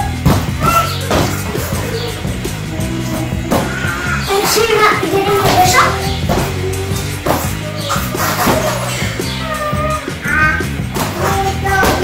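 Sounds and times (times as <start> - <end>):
children calling out: 0.0 - 12.0
upbeat rock music: 0.0 - 12.0.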